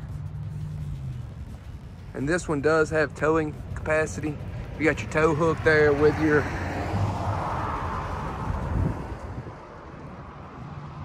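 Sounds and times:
distant vehicle rumble: 0:00.0 - 0:11.0.

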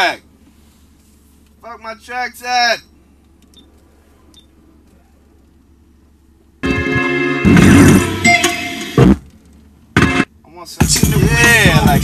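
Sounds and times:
car cabin hum: 0:00.0 - 0:12.0.

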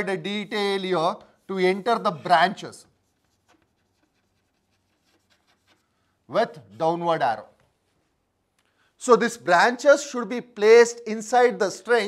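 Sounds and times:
chalk scratching on blackboard: 0:02.9 - 0:06.0.

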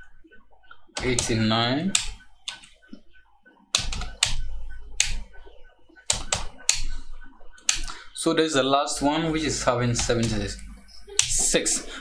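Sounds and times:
keyboard typing clicks: 0:01.0 - 0:02.8, 0:03.7 - 0:08.0, 0:09.9 - 0:11.6.

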